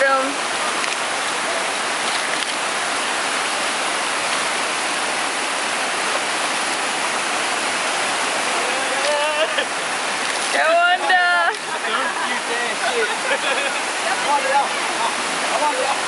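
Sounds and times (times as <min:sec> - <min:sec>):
waterfall rushing: 0:00.0 - 0:16.0
person shouting or laughing: 0:08.5 - 0:09.7.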